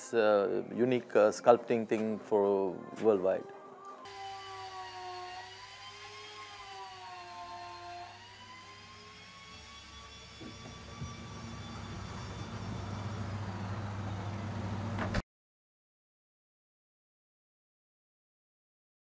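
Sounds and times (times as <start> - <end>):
power tool whining: 4.0 - 15.2
low steady machine hum: 11.0 - 15.1.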